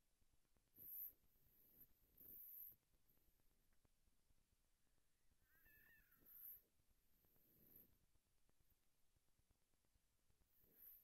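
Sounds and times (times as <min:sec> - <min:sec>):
faint high-pitched cry: 0:05.4 - 0:06.6.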